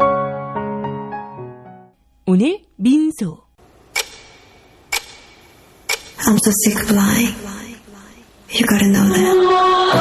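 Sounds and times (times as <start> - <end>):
clock-like ticks: 3.9 - 6.4
pop song: 8.8 - 10.0.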